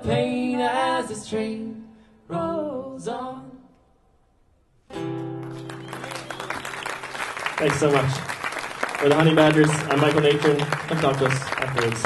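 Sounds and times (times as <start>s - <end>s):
acoustic guitar chord ringing: 4.9s - 6.0s
audience clapping: 5.4s - 12.0s.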